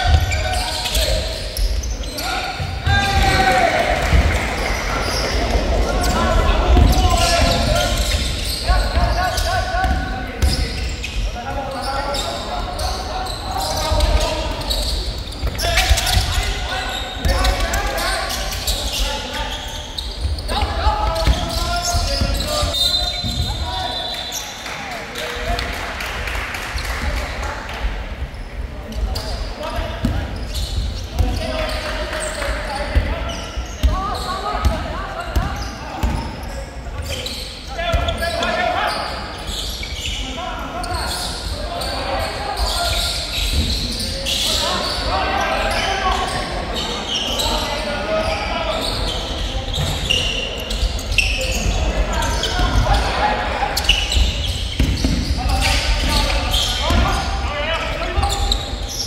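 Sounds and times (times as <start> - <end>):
voices calling out: 0.0 - 24.5.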